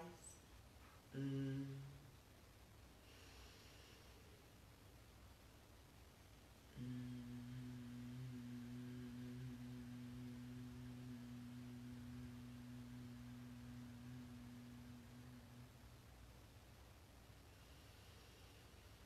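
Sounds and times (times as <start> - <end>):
woman humming softly: 0.0 - 0.4, 1.1 - 2.1, 6.7 - 16.0.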